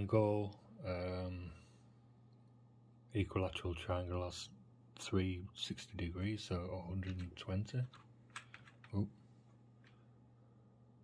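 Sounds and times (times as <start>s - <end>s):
faint low hum: 0.0s - 11.0s
computer keyboard keystrokes: 7.9s - 9.0s.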